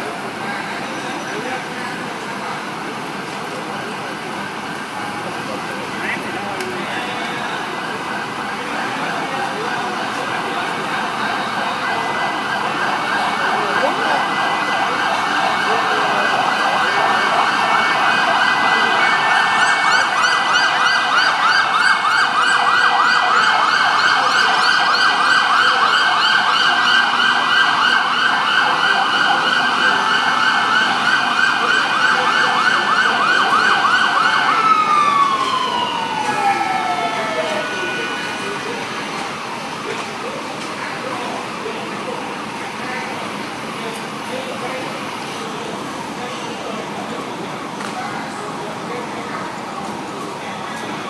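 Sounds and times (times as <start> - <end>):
fire engine sirens yelping: 0.0 - 51.0.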